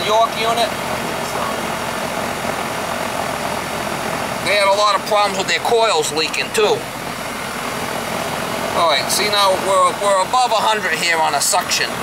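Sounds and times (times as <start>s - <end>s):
air conditioner unit running: 0.0s - 12.0s.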